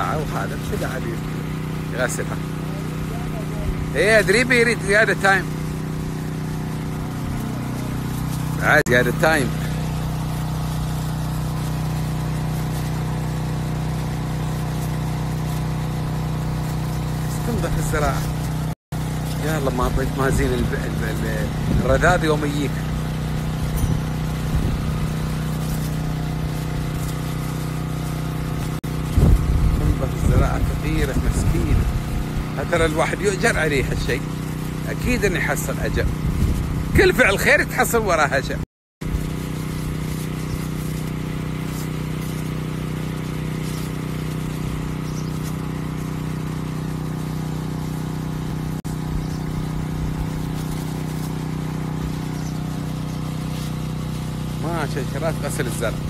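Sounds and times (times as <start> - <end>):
hose spraying water: 0.0 - 56.0
sprayer pump humming: 0.0 - 56.0.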